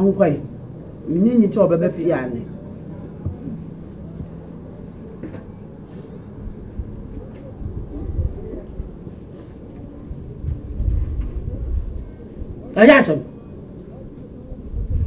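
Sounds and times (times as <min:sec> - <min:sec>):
crickets chirping: 0:00.0 - 0:15.0.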